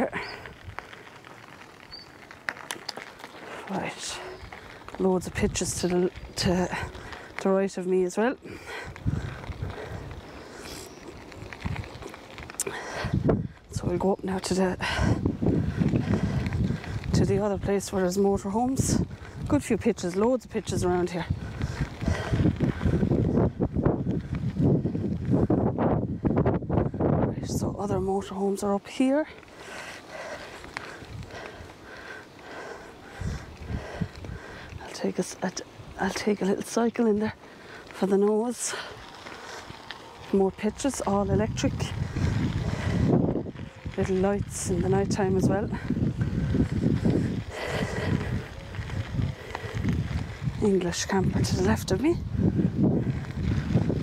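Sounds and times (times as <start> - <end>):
bicycle tyres rolling on gravel: 0.0 - 54.0
wind buffeting microphone: 0.0 - 54.0.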